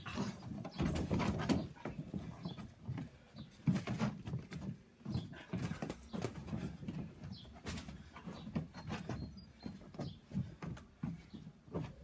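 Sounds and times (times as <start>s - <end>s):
feet thudding on wooden decking: 0.0s - 12.0s.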